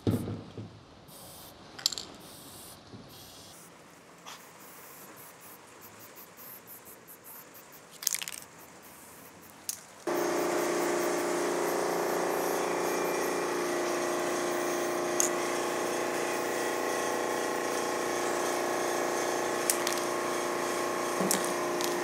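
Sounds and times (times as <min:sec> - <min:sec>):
spray paint can hissing: 0:01.1 - 0:22.0.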